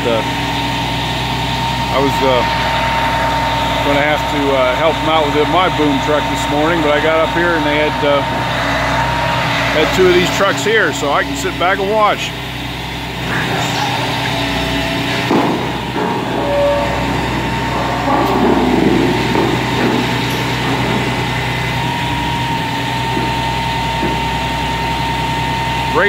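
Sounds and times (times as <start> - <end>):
heavy truck engines running: 0.0 - 26.0
thin whine: 0.0 - 26.0.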